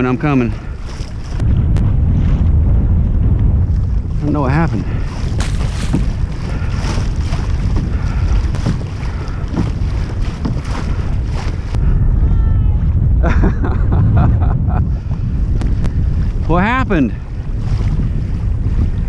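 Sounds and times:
water splashing along a hull: 0:00.0 - 0:19.0
wind buffeting microphone: 0:00.0 - 0:19.0.

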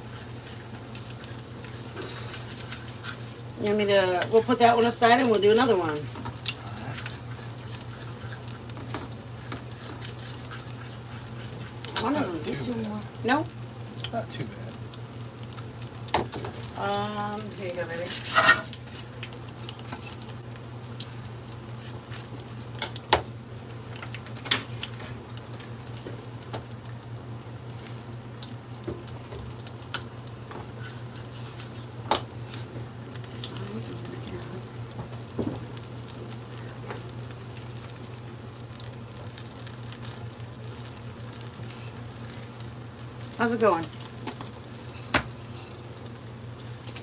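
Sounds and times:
dough sizzling in hot oil: 0:00.0 - 0:47.0
low steady hum: 0:00.0 - 0:47.0.

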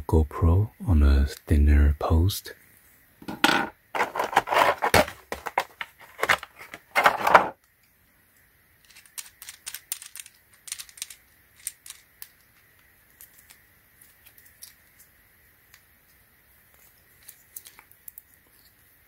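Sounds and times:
plastic packaging crinkling: 0:03.9 - 0:07.5
plastic parts clicking: 0:04.0 - 0:07.5, 0:08.8 - 0:15.1.

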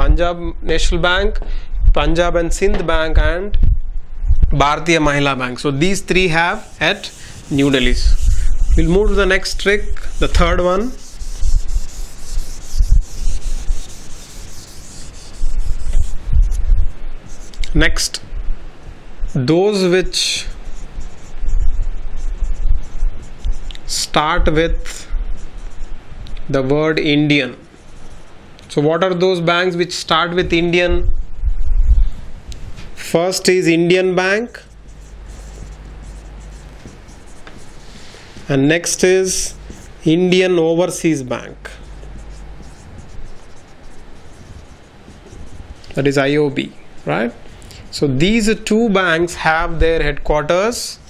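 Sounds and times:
duster wiping whiteboard: 0:05.8 - 0:18.1, 0:19.8 - 0:25.9, 0:34.5 - 0:46.5.

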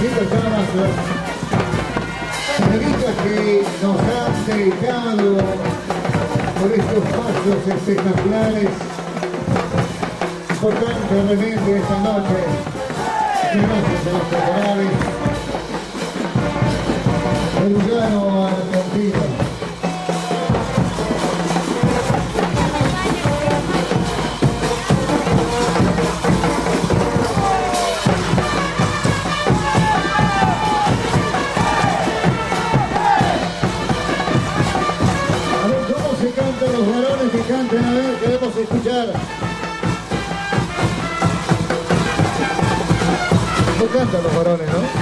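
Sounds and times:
brass band playing: 0:00.0 - 0:45.0
steady drumbeat: 0:00.0 - 0:45.0.

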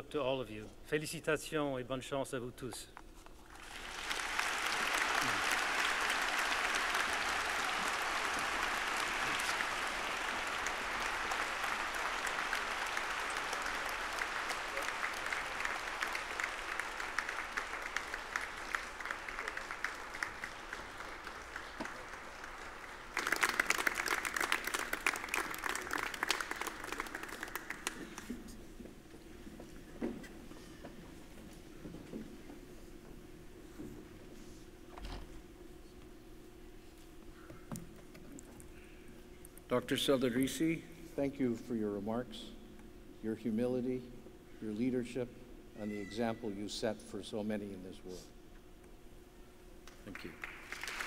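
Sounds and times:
audience applause: 0:03.5 - 0:28.4, 0:50.1 - 0:51.0.

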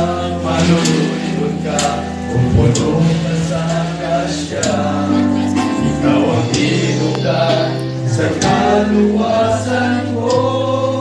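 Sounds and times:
men singing together: 0:00.0 - 0:11.0.

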